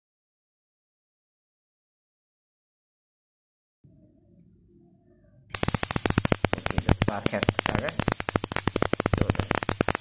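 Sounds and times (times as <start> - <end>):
crackle of snapping sparks: 5.5 - 10.0
high-pitched whine: 5.5 - 10.0.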